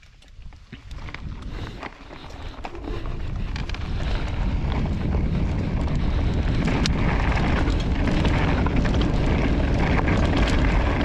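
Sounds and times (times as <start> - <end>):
bike clicks and rattles: 0.0 - 11.0
wind rumbling on microphone: 0.0 - 11.0
tyres rolling over dirt: 0.6 - 11.0.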